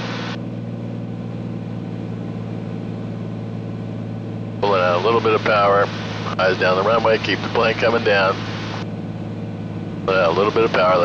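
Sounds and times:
aircraft engine drone in cabin: 0.0s - 11.0s.

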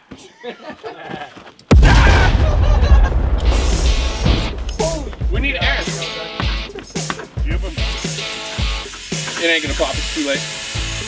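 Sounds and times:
people laughing: 0.1s - 1.5s, 2.1s - 3.8s
loud rushing fireball burn: 1.7s - 5.8s
people shouting: 1.7s - 7.4s.

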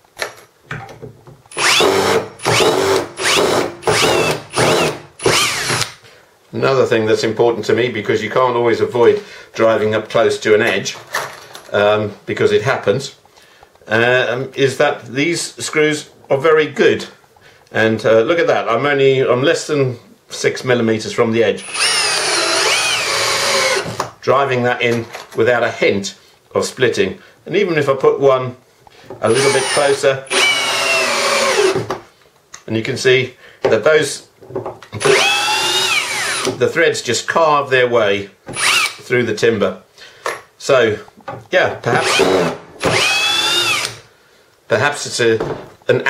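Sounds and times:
cordless drill driving screw: 1.5s - 6.0s, 21.6s - 24.0s, 29.3s - 31.9s, 35.0s - 36.6s, 38.5s - 39.0s, 42.0s - 44.0s.

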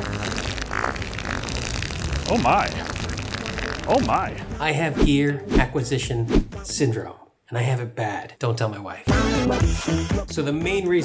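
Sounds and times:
comedic fart sound effect: 0.0s - 4.5s
background music: 1.9s - 7.3s, 9.0s - 11.0s.

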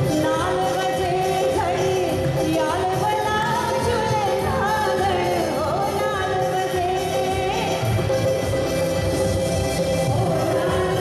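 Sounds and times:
woman singing into microphone: 0.0s - 8.2s, 9.9s - 11.0s
instrumental accompaniment: 0.0s - 11.0s.

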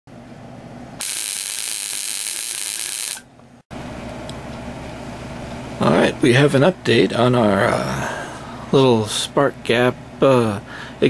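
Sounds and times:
electric sparks crackling: 1.0s - 3.2s.

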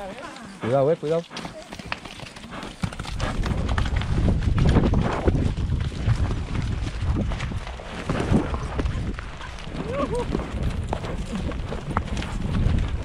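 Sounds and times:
horse hooves on muddy trail: 0.0s - 13.0s.

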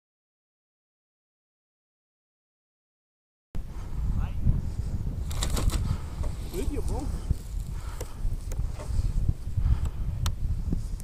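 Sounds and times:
wind buffeting microphone: 3.6s - 11.0s.

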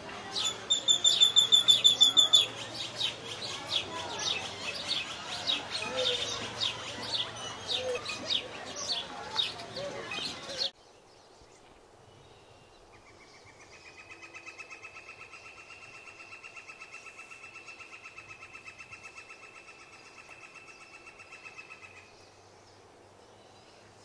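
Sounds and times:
bird chirps: 0.2s - 10.7s
animal's high-pitched trill: 0.5s - 2.5s.

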